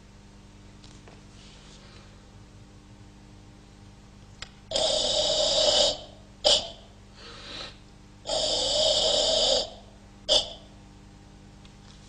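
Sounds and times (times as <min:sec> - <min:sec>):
forceful hissing breaths: 0:04.7 - 0:10.7
short sharp breaths: 0:07.1 - 0:07.9.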